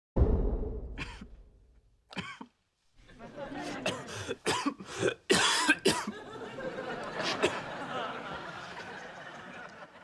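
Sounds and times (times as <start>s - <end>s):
man coughing: 1.0s - 1.4s, 2.1s - 2.5s, 3.8s - 6.2s.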